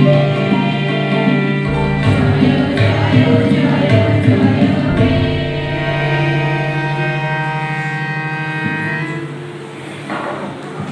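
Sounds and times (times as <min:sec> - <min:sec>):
harmonium holding a chord: 0:00.0 - 0:10.1.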